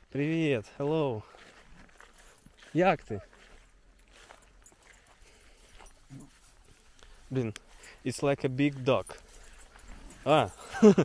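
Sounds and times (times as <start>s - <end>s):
faint rustling: 3.4s - 11.0s.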